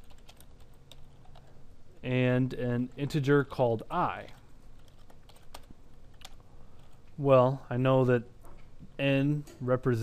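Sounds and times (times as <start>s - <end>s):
keyboard keys clicking: 0.0s - 1.5s.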